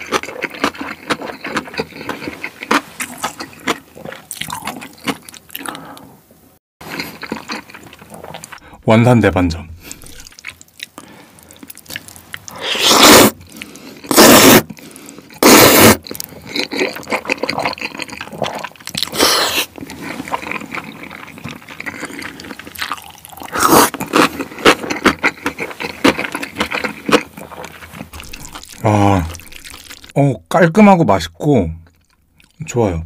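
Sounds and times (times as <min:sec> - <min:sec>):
wet chewing: 0:00.0 - 0:06.1, 0:06.8 - 0:08.6, 0:09.9 - 0:30.2
loud slurping of noodles: 0:12.5 - 0:16.1, 0:23.4 - 0:24.6.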